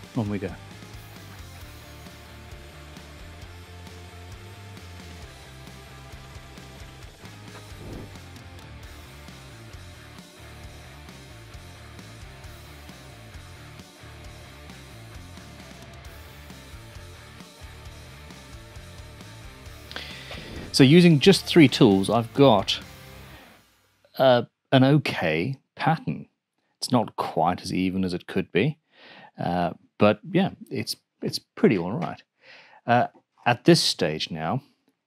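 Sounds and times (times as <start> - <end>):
guitar: 0.0 - 23.6.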